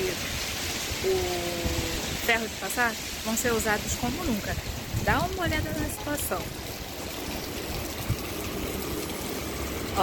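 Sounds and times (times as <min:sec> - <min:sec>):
rain: 0:00.0 - 0:10.0
running water on street: 0:00.0 - 0:10.0.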